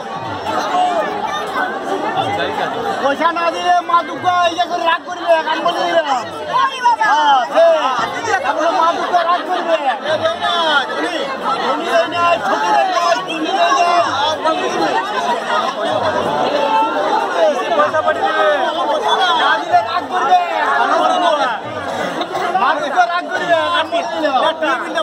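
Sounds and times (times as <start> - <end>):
crowd chatter: 0.0 - 25.0.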